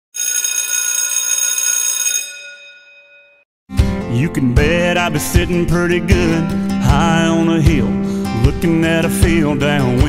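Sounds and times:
bright bell-like ringing tone: 0.2s - 3.5s.

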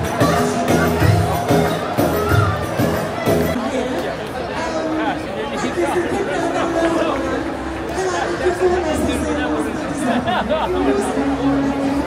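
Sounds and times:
festival music with heavy bass: 0.0s - 3.6s
crowd chatter: 0.0s - 12.0s.

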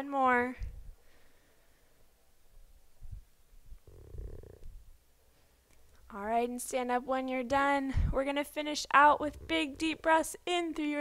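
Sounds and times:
soft breath: 0.7s - 2.2s.

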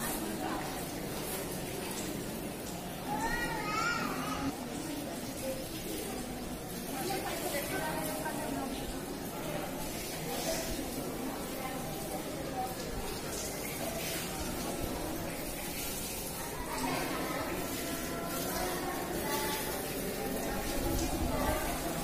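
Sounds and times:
indistinct chatter of voices: 0.0s - 22.0s.

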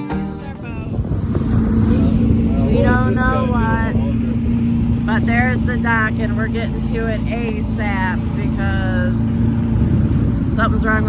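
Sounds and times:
boat motor running: 0.0s - 11.0s
indistinct voices: 1.7s - 9.4s.

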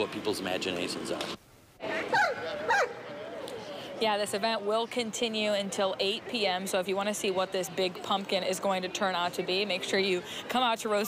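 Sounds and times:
dog yelping: 2.0s - 3.0s.

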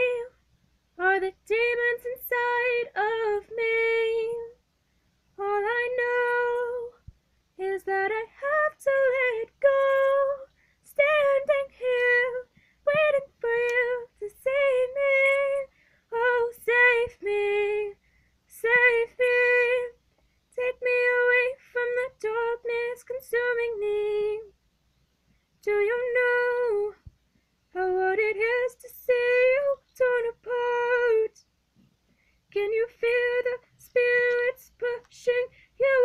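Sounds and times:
woman singing unaccompanied: 0.0s - 4.6s, 5.3s - 24.6s, 25.6s - 27.1s, 27.7s - 31.5s, 32.5s - 36.0s.

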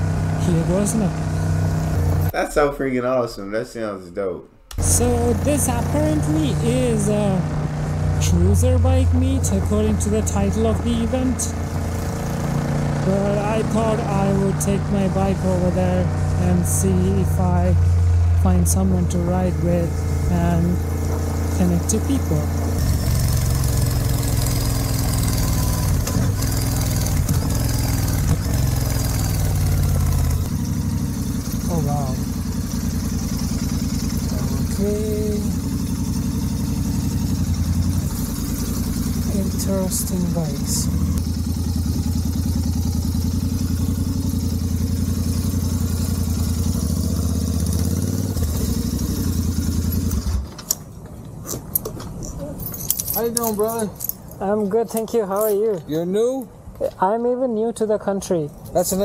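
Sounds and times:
motorcycle engine running: 0.0s - 2.4s, 4.8s - 51.0s.

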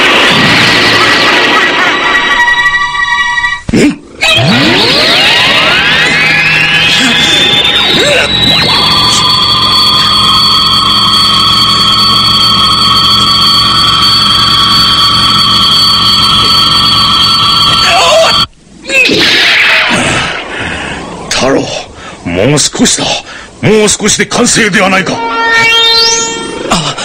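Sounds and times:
electronic energy beam whine: 0.0s - 3.6s, 4.2s - 18.5s, 25.1s - 26.7s.

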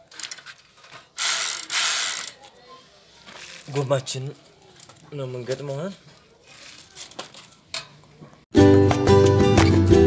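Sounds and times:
bicycle freewheel ratcheting buzz: 1.2s - 2.4s.

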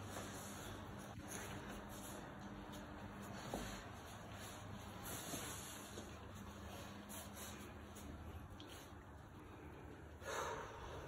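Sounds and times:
person gasping: 10.2s - 11.0s.

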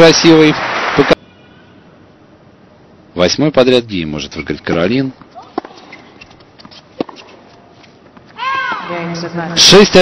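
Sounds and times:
racket striking tennis ball: 5.2s - 7.6s.

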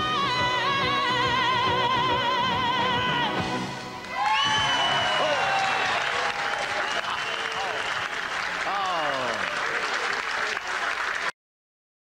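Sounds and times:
audience applauding and cheering: 3.8s - 11.4s.

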